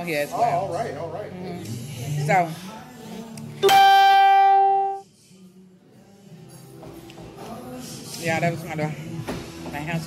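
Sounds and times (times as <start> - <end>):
faint background music: 0.0 - 10.0
loud steady pitched tone: 3.6 - 5.0.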